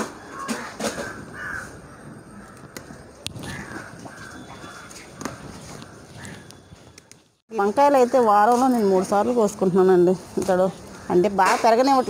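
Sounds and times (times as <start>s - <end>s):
crow cawing: 0.2s - 6.6s.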